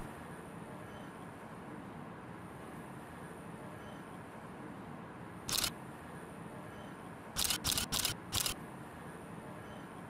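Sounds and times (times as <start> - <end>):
camera shutter firing: 5.5 - 5.7, 7.4 - 8.6.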